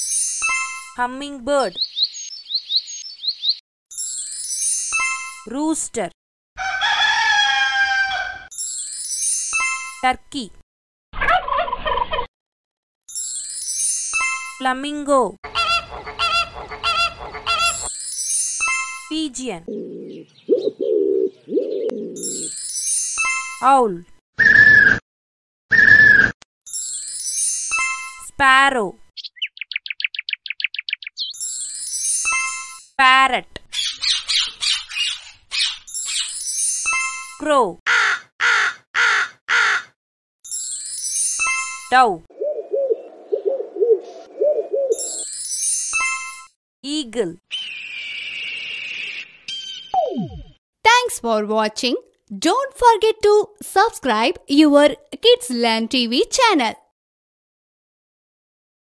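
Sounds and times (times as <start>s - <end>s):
rooster crowing: 6.6s - 8.5s
parrot harsh calls: 15.5s - 17.9s, 37.9s - 39.9s, 47.5s - 49.2s
pigeon cooing: 19.7s - 22.2s, 42.3s - 45.2s.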